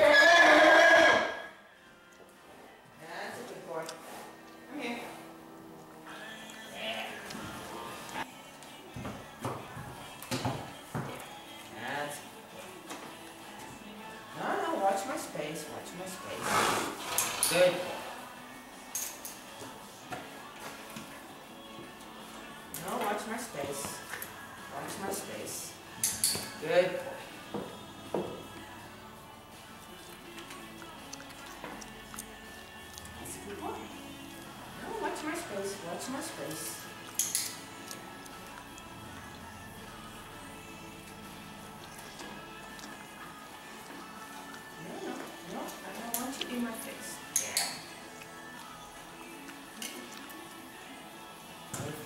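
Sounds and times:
horse neighing: 0.0s - 1.6s.

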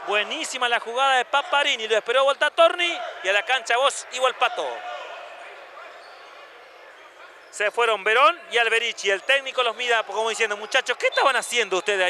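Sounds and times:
echoing crowd and court noise: 0.0s - 12.0s.

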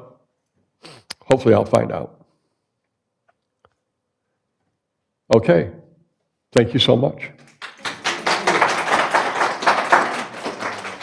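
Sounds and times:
audience applauding: 7.4s - 11.0s.

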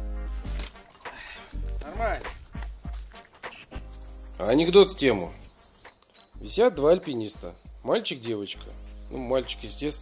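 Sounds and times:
background music with deep bass: 0.0s - 10.0s.

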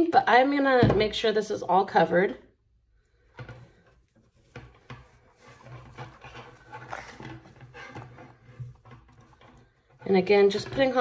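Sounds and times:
ribbon rustling and scraping: 3.6s - 10.2s.

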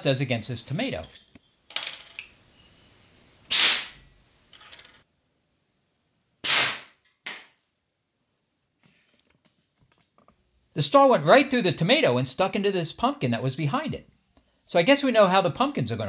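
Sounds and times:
fire extinguisher gas blasts: 3.5s - 4.0s, 6.4s - 6.9s.

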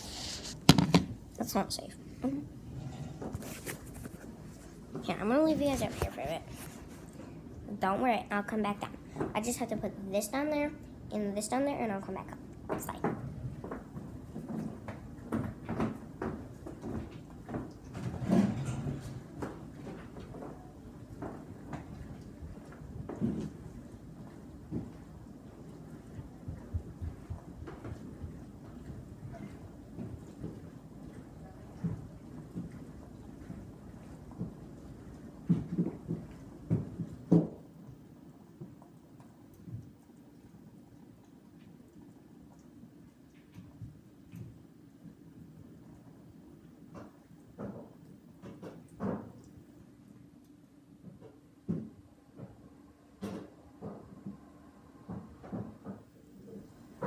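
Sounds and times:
household knocks and bumps: 0.4s - 1.2s.

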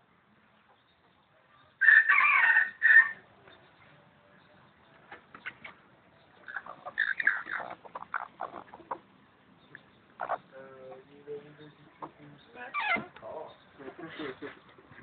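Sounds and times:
rooster crowing: 1.8s - 3.2s
chicken clucking and squawking: 5.2s - 11.1s.

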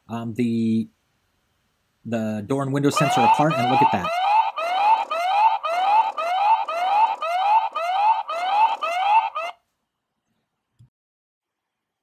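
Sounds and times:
alarm siren whooping: 3.0s - 9.6s.

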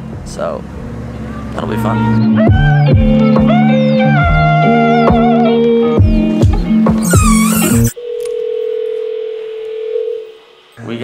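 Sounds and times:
background music: 0.8s - 7.9s
intercom electronic ringing tone: 7.3s - 10.3s.

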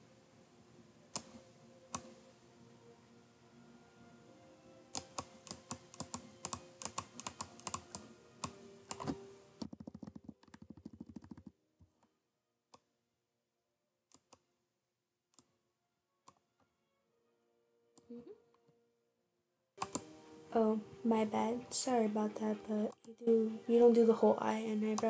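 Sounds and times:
keyboard and mouse clicking: 1.1s - 2.2s, 4.9s - 11.5s, 14.1s - 14.5s, 19.8s - 20.1s.

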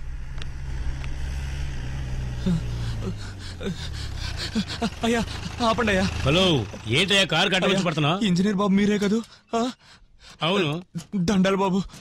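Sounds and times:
engine running with low drone: 0.0s - 8.2s.

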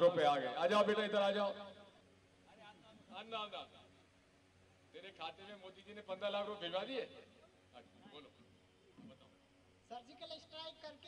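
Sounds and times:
man speaking into microphone: 0.0s - 1.8s, 5.0s - 8.4s, 9.9s - 11.0s.

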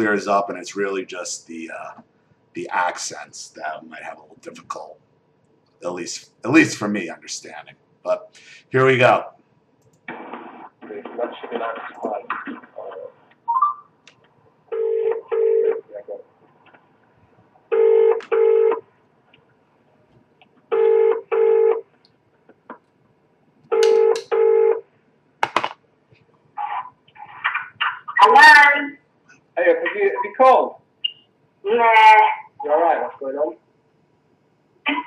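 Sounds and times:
telephone ringback tone: 14.7s - 15.8s, 17.7s - 18.8s, 20.8s - 21.8s, 23.8s - 24.8s
person speaking on phone: 26.6s - 28.9s, 29.6s - 30.7s.

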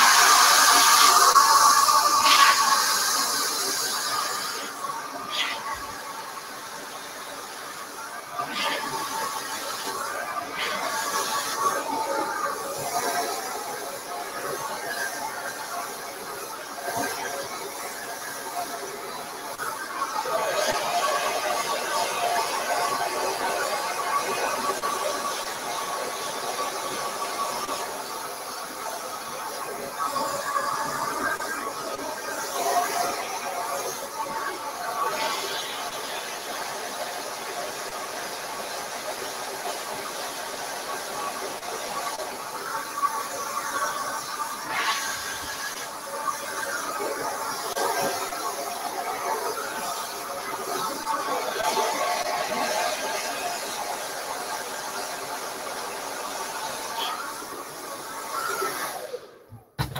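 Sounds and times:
hair dryer blowing: 0.0s - 17.7s, 43.4s - 59.9s.

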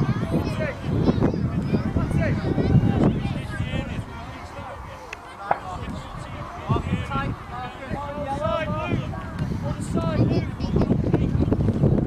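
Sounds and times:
voices calling and shouting: 0.0s - 12.0s
wind rumble on microphone: 0.0s - 12.0s.

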